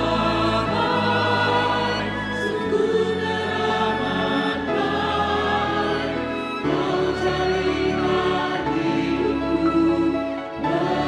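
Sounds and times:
choir singing a hymn: 0:00.0 - 0:11.0.

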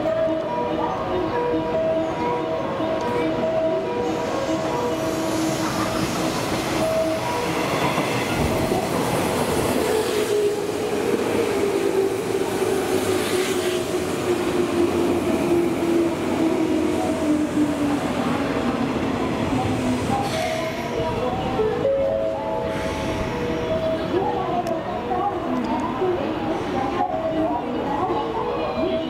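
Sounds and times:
electric train arriving: 0:00.0 - 0:29.0.

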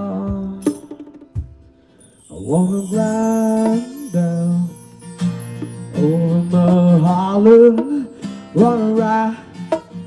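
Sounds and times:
acoustic guitar: 0:00.0 - 0:10.0
light hand percussion: 0:00.3 - 0:08.1.

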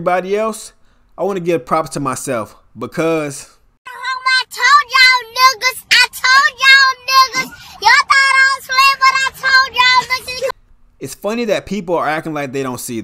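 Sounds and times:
girl singing: 0:03.9 - 0:10.6.

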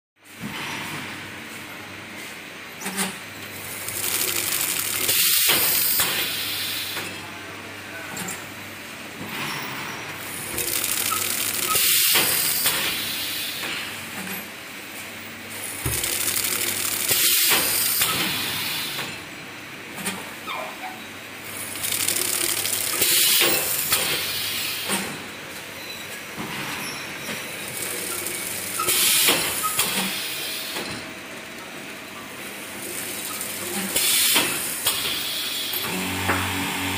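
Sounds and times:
machine clatter and hiss: 0:00.2 - 0:36.9.

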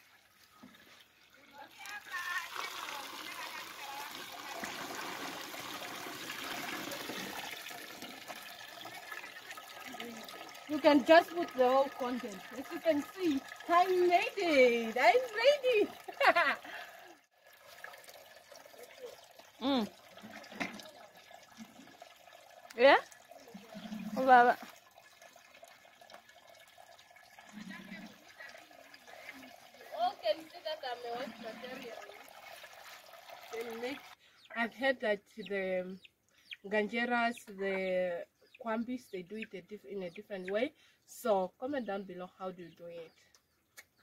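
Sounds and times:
liquid pouring and trickling: 0:00.0 - 0:34.2.

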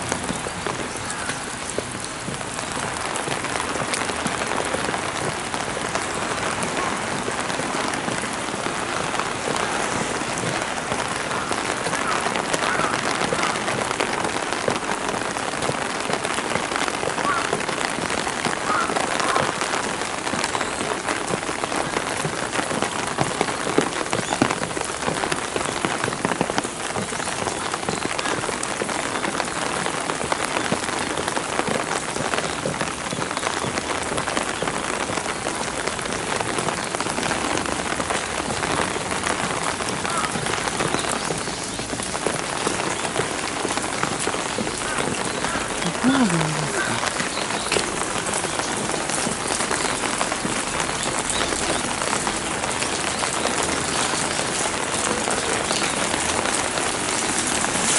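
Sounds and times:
rain pattering on stone and gravel: 0:00.0 - 0:57.9.

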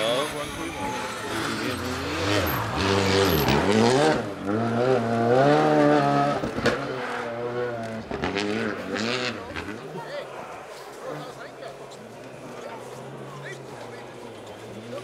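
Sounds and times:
rally car engine revving: 0:00.0 - 0:09.9.

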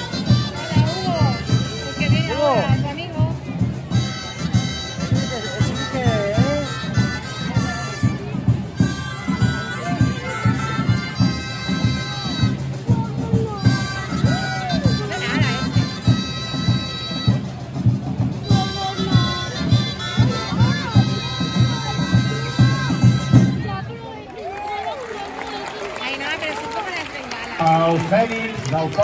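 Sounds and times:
drums beating: 0:00.0 - 0:24.0, 0:25.9 - 0:29.0.

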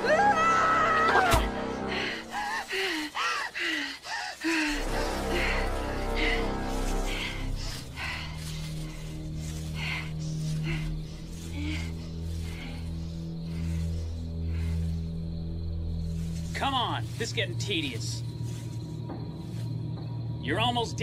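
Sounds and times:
low suspense score drone: 0:04.6 - 0:21.0.

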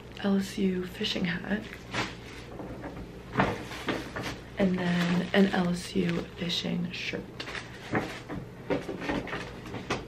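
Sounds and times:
gifts being handled: 0:03.4 - 0:06.7.

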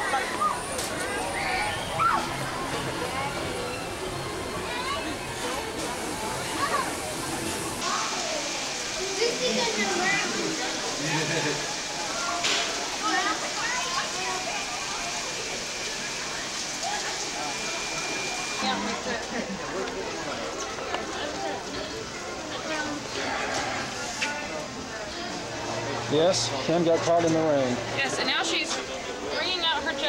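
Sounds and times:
people chattering: 0:00.0 - 0:30.0
steady rain hiss: 0:00.1 - 0:30.0.

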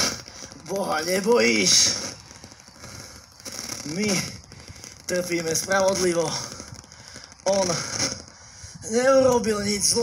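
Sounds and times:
faint outdoor background noise: 0:00.0 - 0:10.0
man speaking: 0:00.6 - 0:02.1, 0:05.1 - 0:06.5.

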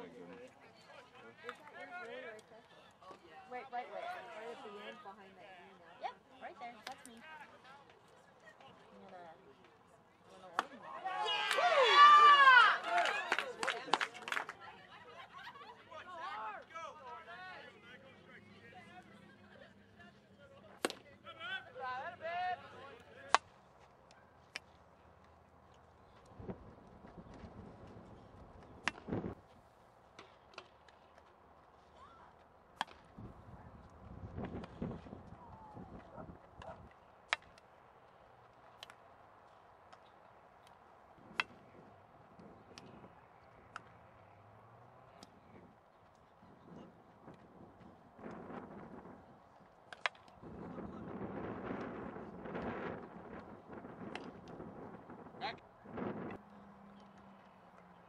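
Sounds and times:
sharp crack: 0:28.8 - 0:29.3, 0:32.8 - 0:33.1, 0:49.9 - 0:50.4
wind blowing on microphone: 0:33.2 - 0:36.8, 0:50.4 - 0:56.4.

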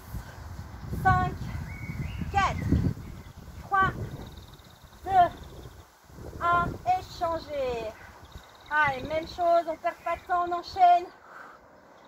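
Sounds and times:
woman calling out numbers: 0:00.9 - 0:01.6, 0:02.3 - 0:02.8, 0:03.6 - 0:04.4, 0:05.0 - 0:05.5, 0:06.4 - 0:08.0, 0:08.7 - 0:11.2.

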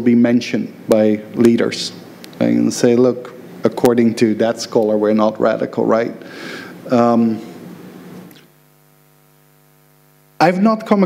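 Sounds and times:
faint electrical mains hum: 0:00.0 - 0:11.0.

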